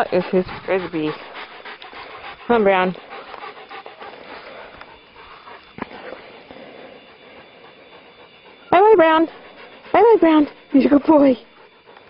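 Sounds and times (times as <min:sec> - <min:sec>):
dog panting: 0:00.0 - 0:12.0.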